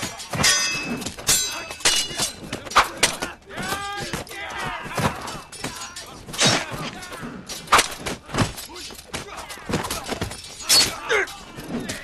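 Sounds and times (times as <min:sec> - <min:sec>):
metal blades clashing: 0:00.0 - 0:12.0.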